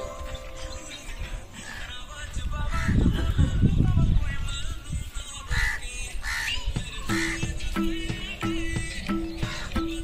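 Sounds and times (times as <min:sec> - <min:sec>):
crow cawing: 0:05.5 - 0:07.5, 0:09.5 - 0:09.7.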